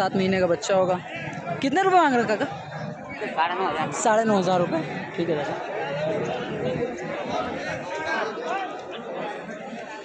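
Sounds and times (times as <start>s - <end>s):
men chattering: 0.0s - 10.0s.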